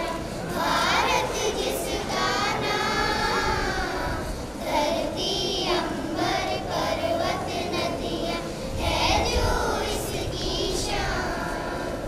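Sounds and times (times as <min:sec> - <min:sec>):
children singing in unison: 0:00.0 - 0:12.0.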